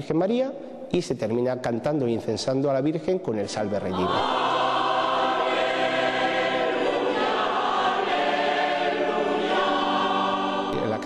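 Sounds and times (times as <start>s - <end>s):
congregation singing a hymn: 3.5s - 11.0s.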